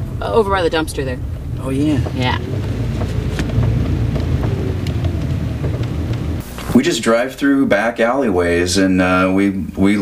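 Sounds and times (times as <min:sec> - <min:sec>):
wind buffeting microphone: 0:00.0 - 0:06.4
car cabin rumble: 0:00.0 - 0:06.5
faint knocks: 0:02.0 - 0:06.4.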